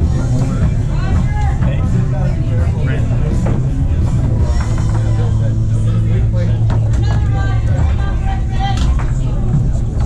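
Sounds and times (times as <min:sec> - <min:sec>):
rock music: 0:00.0 - 0:08.2
foosball rods and ball clacking: 0:04.4 - 0:05.3.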